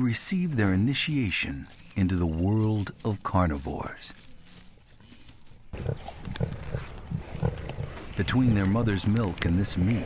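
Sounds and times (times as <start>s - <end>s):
lions growling: 5.7s - 10.0s.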